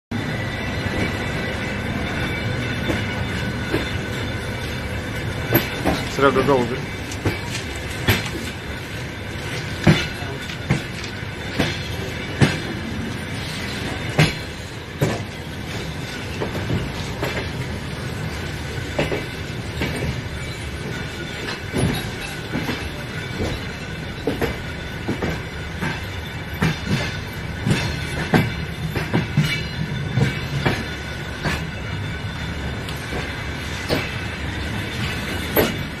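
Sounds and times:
train wheels clacking over rail joints: 0:00.8 - 0:36.0.

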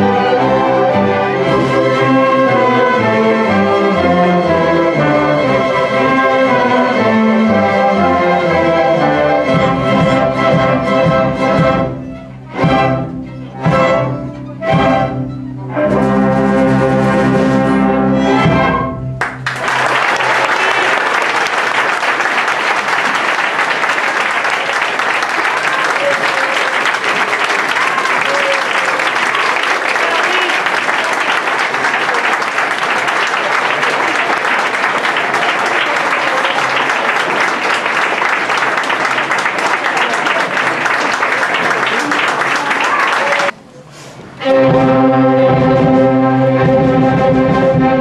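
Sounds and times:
audience applause: 0:19.2 - 0:43.6.

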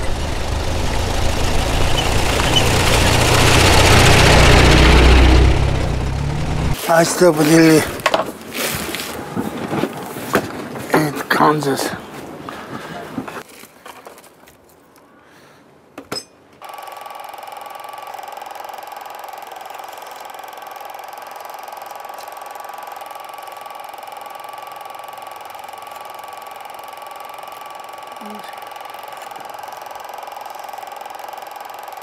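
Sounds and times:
film projector whirring: 0:00.0 - 0:06.8, 0:16.6 - 0:32.0.

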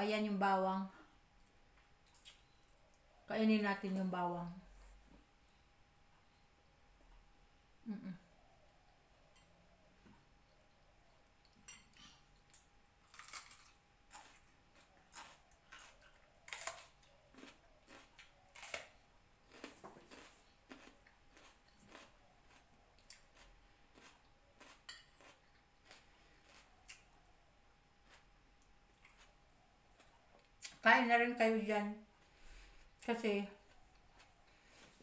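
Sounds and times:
chewing: 0:11.4 - 0:27.3, 0:28.0 - 0:30.8, 0:33.0 - 0:35.0.

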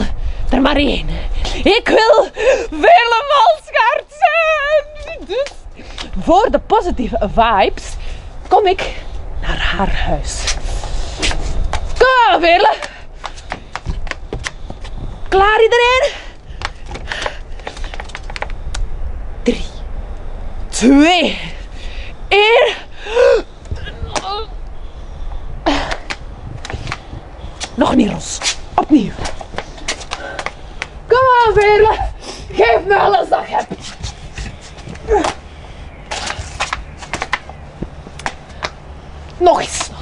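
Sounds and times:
wind rumble on microphone: 0:00.0 - 0:40.0.

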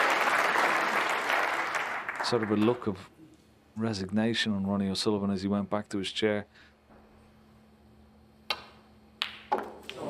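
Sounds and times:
applause: 0:00.0 - 0:03.0.

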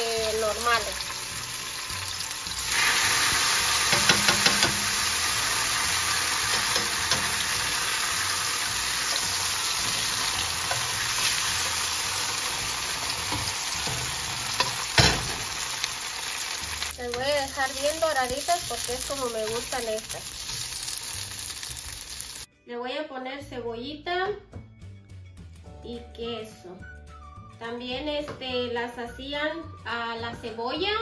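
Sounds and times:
tortillas sizzling in hot oil: 0:00.0 - 0:22.5
metal tongs clicking: 0:06.5 - 0:07.5.

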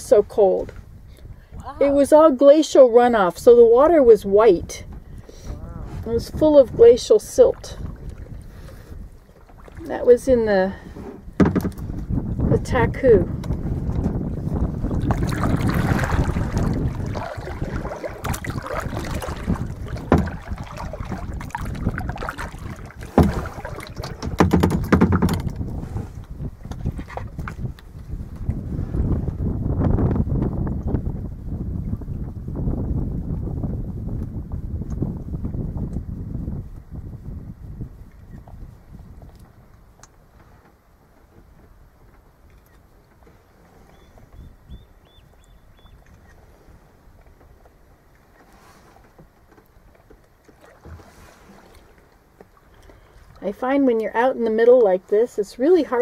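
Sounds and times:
wind buffeting microphone: 0:00.0 - 0:40.6, 0:41.3 - 0:47.6
water lapping against hull: 0:00.0 - 0:56.0
sharp knocks: 0:11.4 - 0:11.8, 0:24.1 - 0:25.5.

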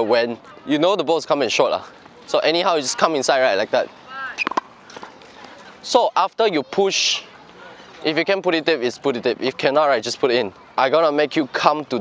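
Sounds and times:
man speaking: 0:08.0 - 0:12.0.

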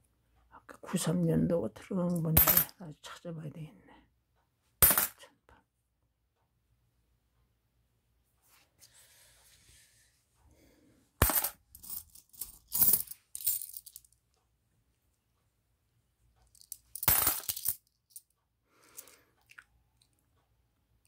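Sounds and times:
coins clinking: 0:02.4 - 0:02.7, 0:04.8 - 0:05.2, 0:11.2 - 0:14.1, 0:16.5 - 0:17.9.

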